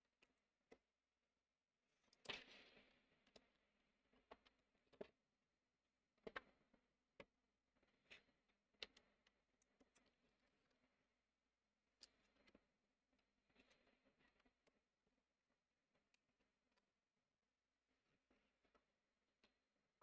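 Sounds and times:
faint clicks and taps: 0:06.2 - 0:07.4, 0:08.1 - 0:10.8.

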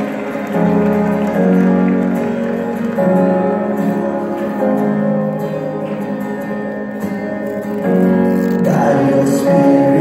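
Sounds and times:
praise and worship music: 0:00.0 - 0:10.0.

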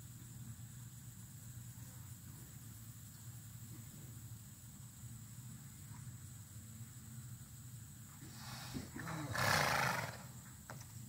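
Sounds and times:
horse calling: 0:08.2 - 0:10.4.

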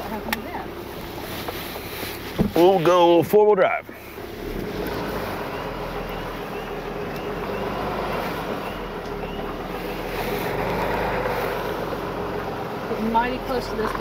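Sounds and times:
road and wind noise: 0:00.0 - 0:14.0
truck engine under load: 0:00.0 - 0:14.0.

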